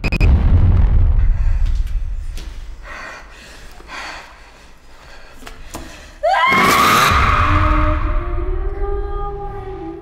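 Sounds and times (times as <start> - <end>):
deep low boom: 0.0 - 2.3.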